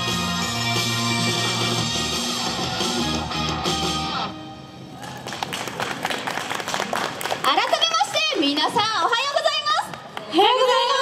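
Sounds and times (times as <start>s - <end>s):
audience applause: 5.0s - 9.0s.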